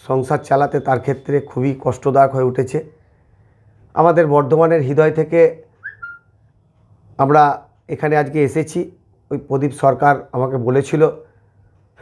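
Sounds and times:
man speaking: 0:00.0 - 0:03.0, 0:03.9 - 0:05.7, 0:07.2 - 0:11.3
high whistling tone: 0:05.8 - 0:06.4.

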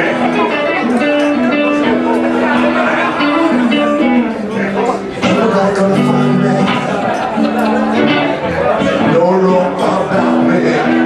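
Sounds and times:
guitar-led band playing: 0:00.0 - 0:11.0.

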